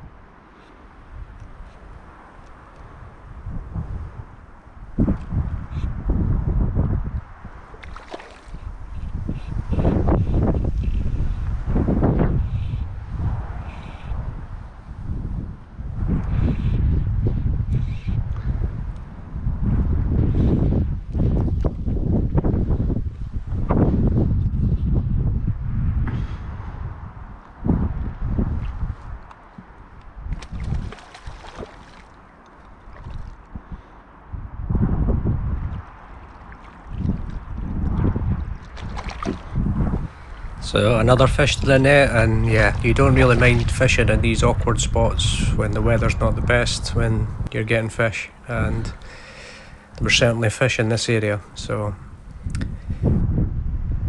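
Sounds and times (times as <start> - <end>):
wind gusting against microphone: 0.0 - 54.0
water sloshing at bank: 7.7 - 8.7, 30.3 - 33.5, 35.8 - 40.5.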